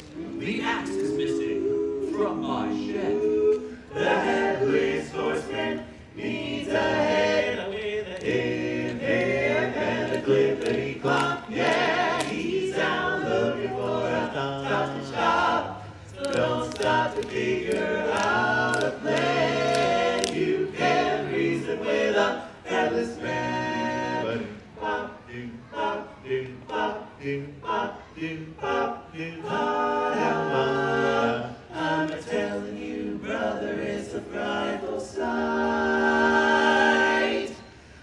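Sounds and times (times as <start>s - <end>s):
male quartet singing a cappella: 0.0s - 38.0s.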